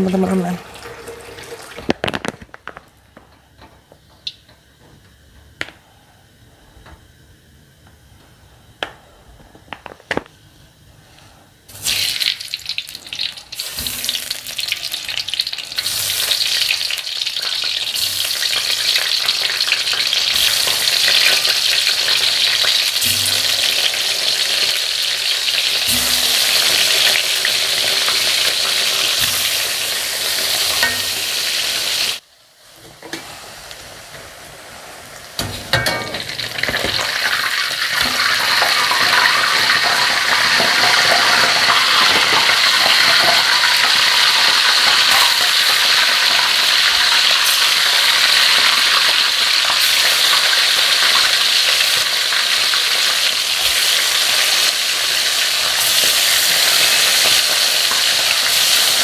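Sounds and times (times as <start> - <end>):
food deep-frying in hot oil: 0.0 - 3.0, 4.1 - 4.6, 11.7 - 59.0
metal spatula knocking a wok: 35.4 - 36.4.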